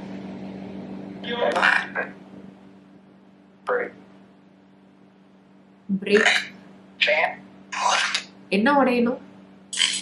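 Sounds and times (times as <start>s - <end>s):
chopped static and garbled voices: 0.0s - 10.0s
steady low hum: 0.0s - 10.0s.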